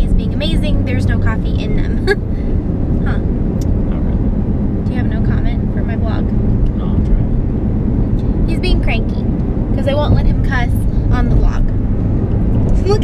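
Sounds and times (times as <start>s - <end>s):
voices: 0.0s - 2.3s, 3.0s - 4.2s, 4.9s - 7.4s, 8.2s - 11.8s, 12.7s - 13.0s
car road and engine rumble: 0.0s - 13.0s.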